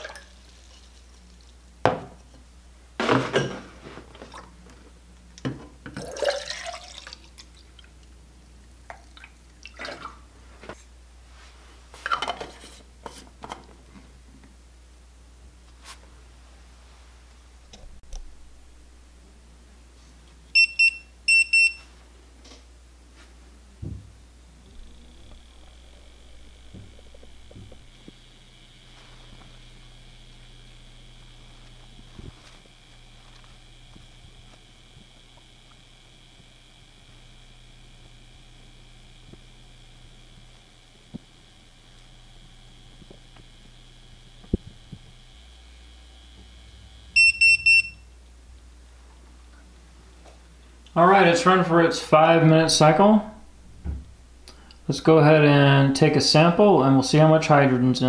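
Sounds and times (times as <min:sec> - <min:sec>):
low hum: 0:16.5 - 0:20.8, 0:23.2 - 0:50.0
faint high whine: 0:23.1 - 0:48.6
electronic beeps: 0:47.2 - 0:48.0.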